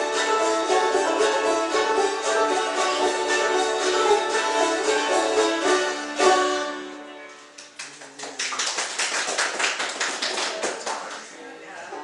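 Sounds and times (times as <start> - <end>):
acoustic string band playing: 0.0 - 7.8
audience clapping: 7.5 - 11.4.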